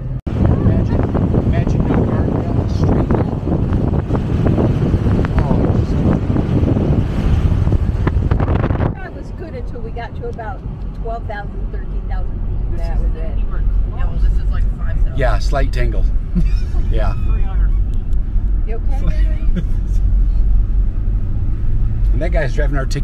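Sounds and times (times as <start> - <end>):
wind rushing over microphone: 0.0 - 22.4
tyre and engine rumble: 0.0 - 23.0
voices talking: 8.9 - 20.1.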